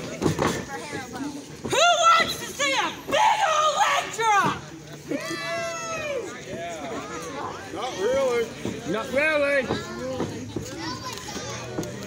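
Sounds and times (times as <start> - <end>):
spectators calling out and chattering: 0.0 - 12.0.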